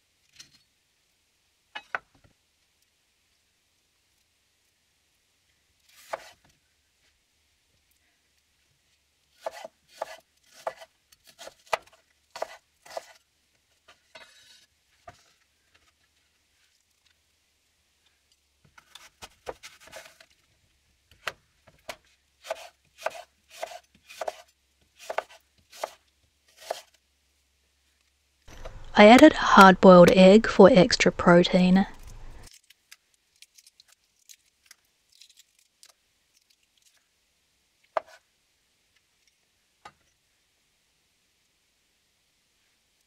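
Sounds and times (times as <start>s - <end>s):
knife chopping on wooden board: 9.4s - 10.8s, 21.9s - 24.4s, 25.0s - 26.0s, 26.6s - 26.9s.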